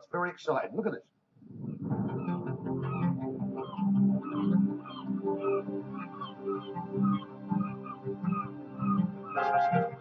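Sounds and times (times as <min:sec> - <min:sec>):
electric guitar and bass music: 0:01.6 - 0:10.0.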